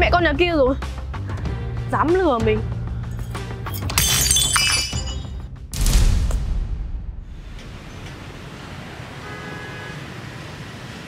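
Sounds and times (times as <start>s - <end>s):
background music: 0.0s - 6.8s
glass shattering: 3.2s - 5.4s.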